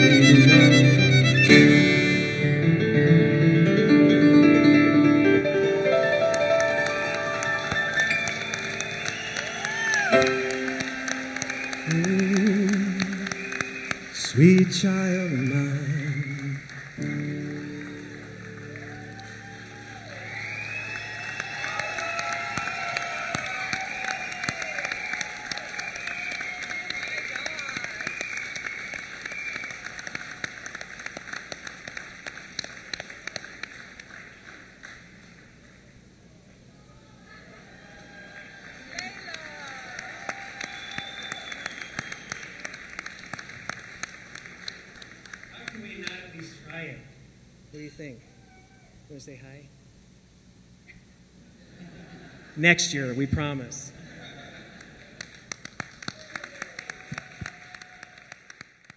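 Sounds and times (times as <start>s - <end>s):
high held tone: 0.0s - 3.2s
audience applause: 6.0s - 15.5s, 16.2s - 35.8s, 37.4s - 46.5s, 54.1s - 58.9s.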